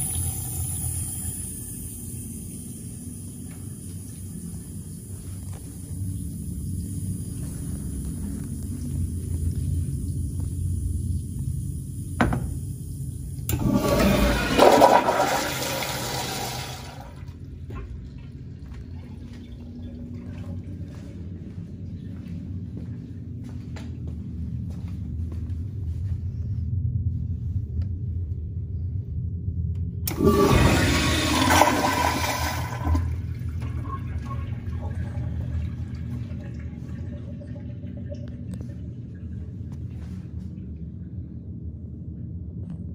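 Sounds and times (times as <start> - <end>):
toilet flushing: 0.0 - 5.6, 13.4 - 21.1, 30.1 - 40.2
water refilling bowl: 13.5 - 17.4, 30.1 - 39.6.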